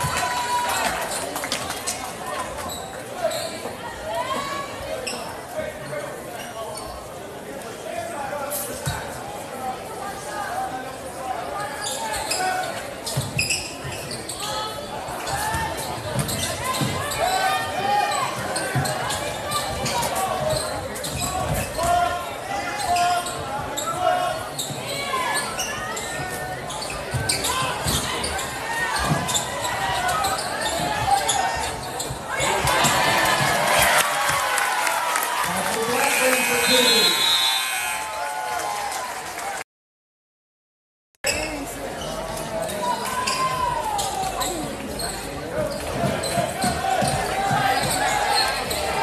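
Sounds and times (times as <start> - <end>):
crowd cheering: 0.0 - 1.6, 32.3 - 39.6.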